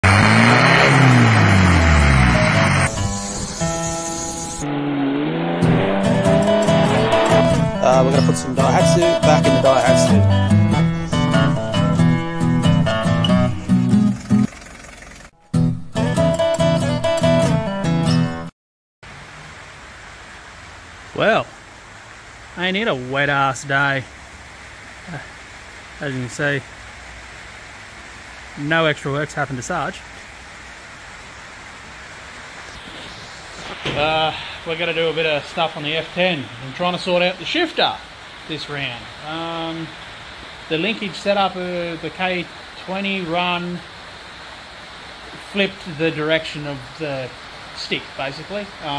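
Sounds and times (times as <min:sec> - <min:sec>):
engine revving hard: 0:00.0 - 0:10.1
engines running at steady revs: 0:00.0 - 0:10.2
light rain falling: 0:07.8 - 0:10.2, 0:19.0 - 0:48.9.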